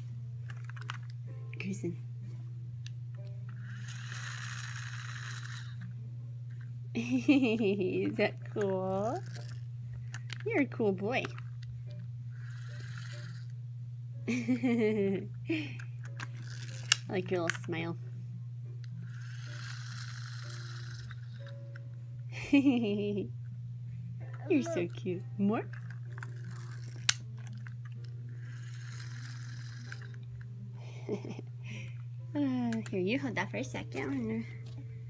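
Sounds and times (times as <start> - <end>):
steady low hum: 0.0 - 35.0
toy spring motor whirring: 0.4 - 1.2, 3.5 - 5.9, 6.5 - 11.7, 12.3 - 13.6, 15.6 - 17.9, 18.8 - 21.8, 24.3 - 30.4.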